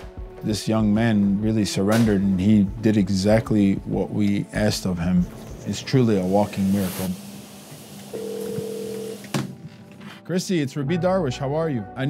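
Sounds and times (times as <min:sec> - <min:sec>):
telephone ringback tone: 0:08.1 - 0:09.2.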